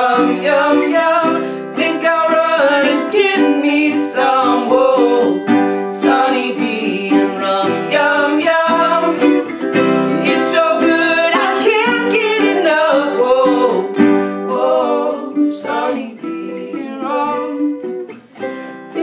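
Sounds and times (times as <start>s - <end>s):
man and woman singing: 0.0s - 19.0s
strummed acoustic guitar: 0.0s - 19.0s
strummed ukulele: 0.0s - 19.0s.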